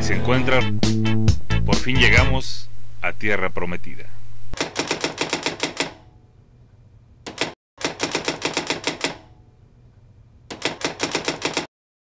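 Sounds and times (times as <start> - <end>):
typewriter keystroke clacks: 4.6 - 6.0, 7.3 - 9.3, 10.5 - 11.7.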